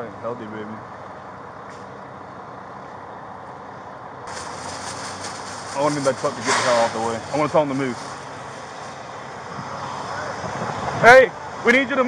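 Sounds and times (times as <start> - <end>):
emergency vehicles idling: 0.0 - 12.0.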